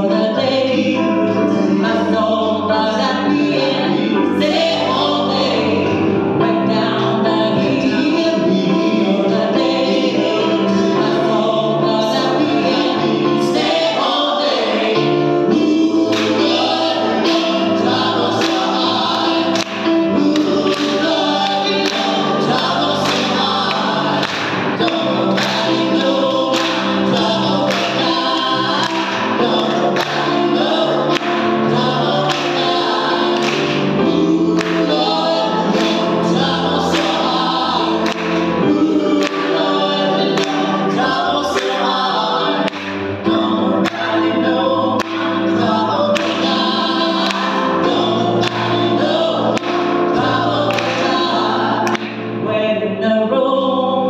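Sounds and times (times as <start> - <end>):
gospel group singing in harmony: 0.0 - 54.0
keyboard accompaniment: 0.0 - 54.0
hand claps: 16.1 - 16.6, 18.2 - 31.6, 32.2 - 34.0, 34.6 - 36.2, 36.9 - 40.8, 41.6 - 42.0, 42.6 - 43.1, 43.8 - 44.2, 45.0 - 45.5, 46.1 - 47.8, 48.4 - 48.8, 49.5 - 49.9, 50.7 - 52.3.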